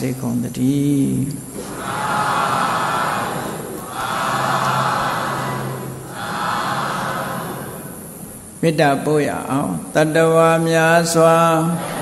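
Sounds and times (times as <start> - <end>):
audience calling out in unison: 1.6 - 7.9.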